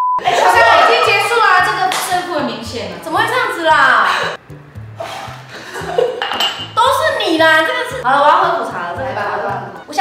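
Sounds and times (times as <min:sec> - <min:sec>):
women talking: 0:00.4 - 0:04.4, 0:06.8 - 0:10.0.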